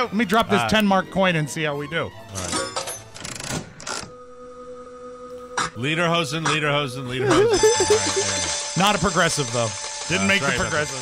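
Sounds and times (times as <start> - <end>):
coin dropping into slot machine: 2.4 - 3.3
slot machine reels clicking: 7.6 - 11.0.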